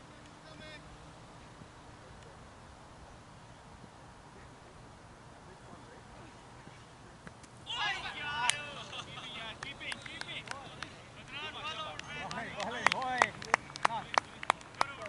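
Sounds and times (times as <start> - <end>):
players shouting excitedly: 7.7 - 13.1
sharp claps: 8.4 - 11.0, 11.7 - 15.0.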